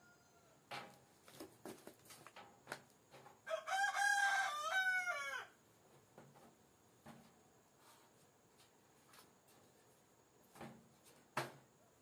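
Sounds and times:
rooster crowing: 0.0s - 0.6s, 3.4s - 5.6s.

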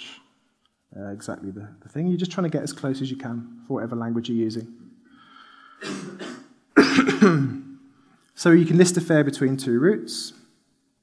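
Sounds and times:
man coughing: 5.8s - 7.7s.

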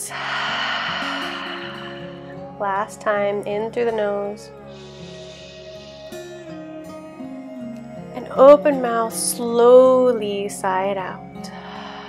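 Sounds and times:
breathy sigh: 0.0s - 3.0s, 4.7s - 6.6s, 11.4s - 12.0s
soft background music: 0.0s - 12.0s.

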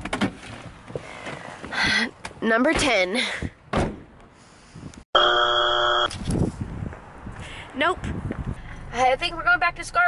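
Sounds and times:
electronic buzzer tone: 5.2s - 6.1s.

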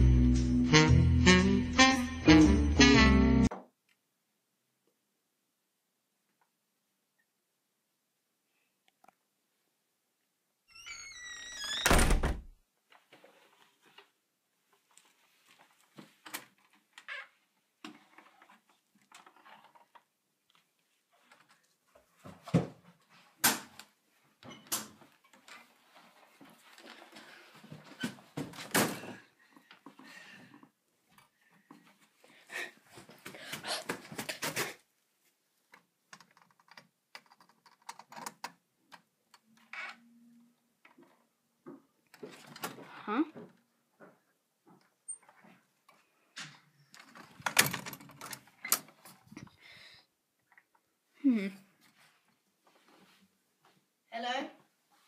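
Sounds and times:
door creaking: 10.7s - 12.6s, 39.6s - 40.4s, 46.4s - 49.1s
door slamming with deep boom: 11.8s - 12.5s.

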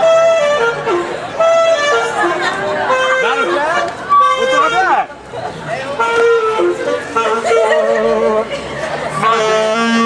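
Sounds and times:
saxophone playing slow melody: 0.0s - 4.8s, 6.0s - 8.5s, 9.2s - 10.0s.

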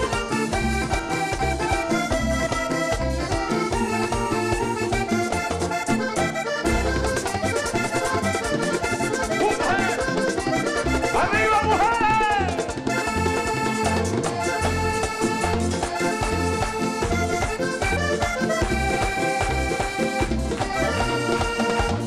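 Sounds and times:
band with button accordion: 0.0s - 22.0s.

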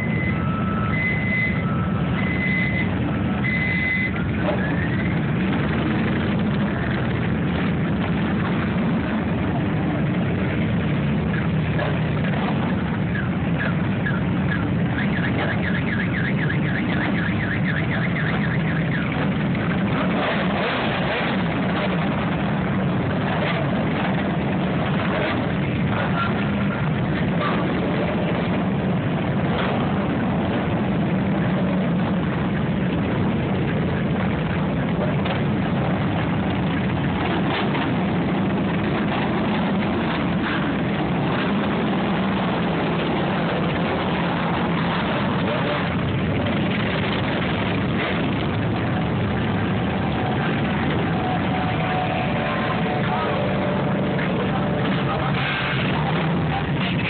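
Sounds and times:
motorcycles idling and pulling away: 0.0s - 57.0s.

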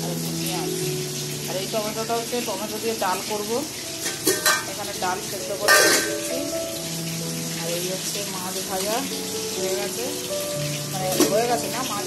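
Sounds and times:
fish sizzling in hot oil: 0.0s - 12.0s.

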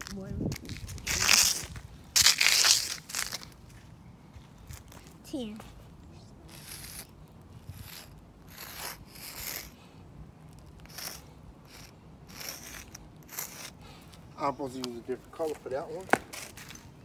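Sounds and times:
chalk scraping on concrete: 6.5s - 9.8s, 10.5s - 13.8s.

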